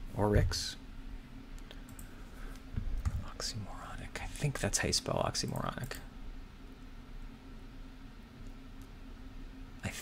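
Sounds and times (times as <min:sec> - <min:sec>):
low steady hum: 0:00.0 - 0:10.0
keyboard typing clicks: 0:01.8 - 0:02.1.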